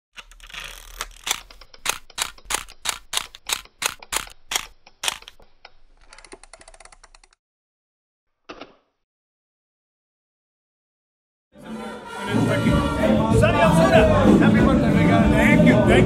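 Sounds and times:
fast rattle of fine clicks: 0.2s - 7.4s
sharp mechanical clicks: 0.2s - 7.4s.

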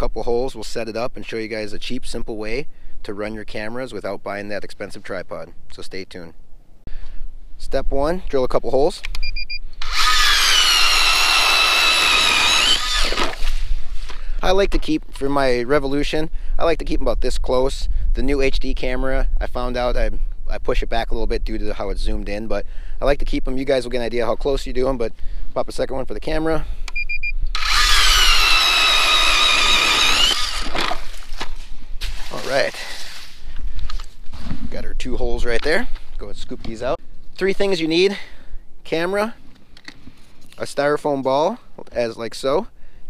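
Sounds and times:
short electronic beeps: 9.2s - 9.7s, 26.9s - 27.4s
ice auger motor whine: 9.8s - 13.4s, 27.6s - 31.1s.

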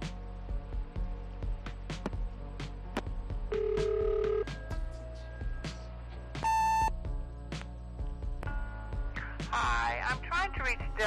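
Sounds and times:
background music with steady beat: 0.0s - 11.0s
answering machine beep: 6.4s - 6.9s
low electronic tone: 6.4s - 7.0s.

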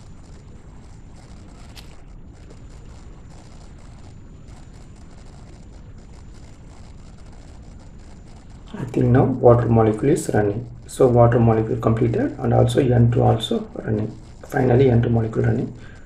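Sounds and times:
faint high whine: 0.0s - 16.0s.

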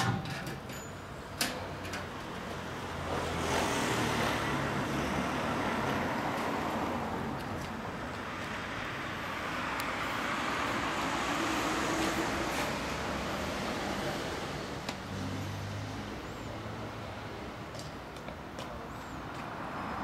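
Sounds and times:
street traffic: 0.0s - 20.0s
vehicle passing: 2.6s - 17.6s.

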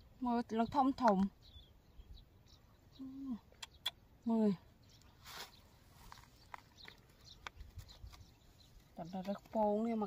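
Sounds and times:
rustle of gloved hands: 5.1s - 9.8s.

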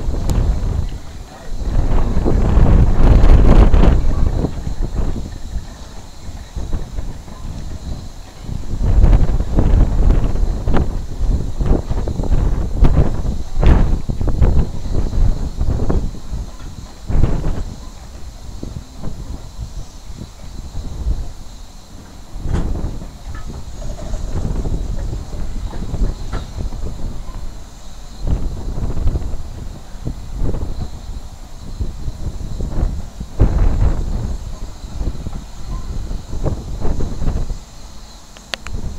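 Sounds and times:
steam locomotive chuffing: 0.0s - 38.9s.

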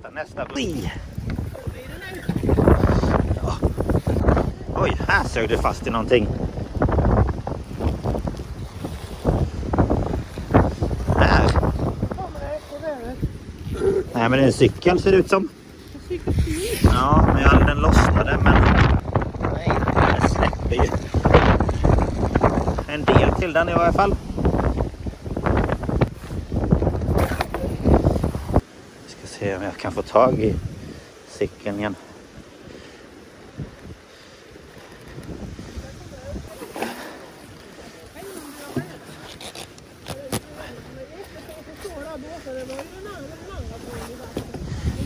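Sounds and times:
wind buffeting microphone: 0.0s - 45.0s
rope hauled up: 27.0s - 28.5s, 36.5s - 43.2s
water lapping against dock: 31.8s - 45.0s.

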